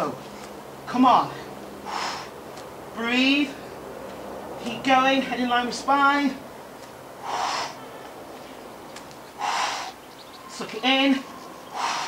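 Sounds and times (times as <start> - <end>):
person breathing hard: 1.3 - 2.4, 7.2 - 8.2, 9.4 - 10.0, 11.7 - 12.0.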